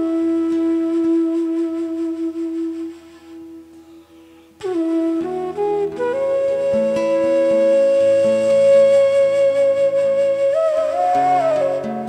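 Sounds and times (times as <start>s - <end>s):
bamboo flute long note: 0.0s - 12.0s.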